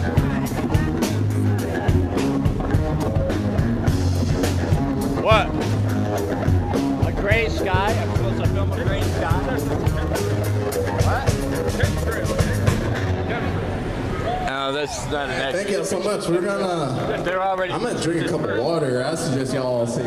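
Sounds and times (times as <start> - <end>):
drum kit beat: 0.0 - 13.2
bass line: 0.0 - 14.1.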